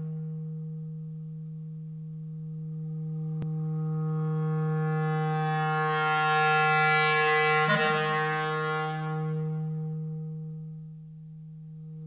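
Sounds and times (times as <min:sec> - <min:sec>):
clarinet long low note: 0:03.4 - 0:11.0.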